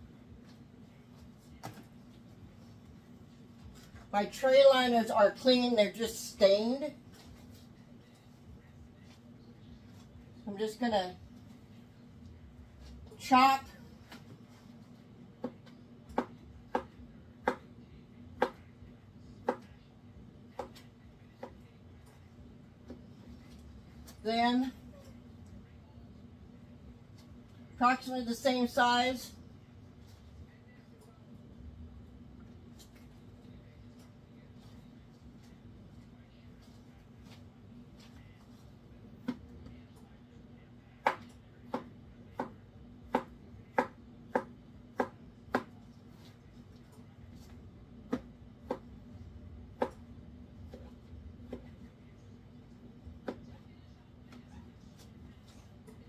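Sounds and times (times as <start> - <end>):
knife chopping on cutting board: 15.4 - 17.7, 41.0 - 45.8.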